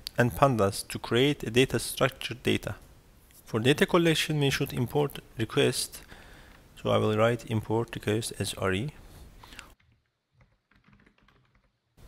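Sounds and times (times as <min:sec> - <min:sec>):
typing on computer keyboard: 0:09.8 - 0:11.8.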